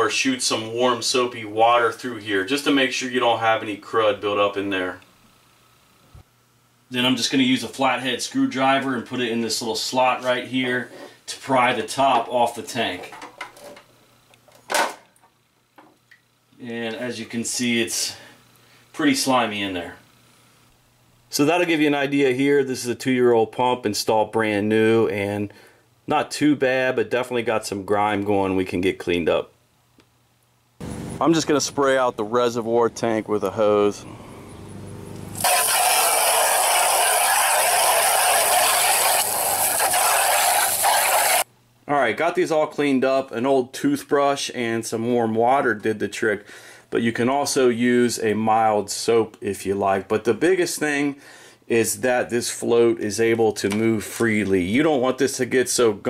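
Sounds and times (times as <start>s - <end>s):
hose spraying water into plastic tank: 35.4s - 41.5s.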